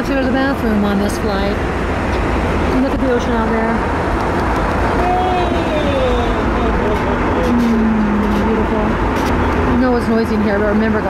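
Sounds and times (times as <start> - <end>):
jet airliner cabin noise: 0.0 - 11.0.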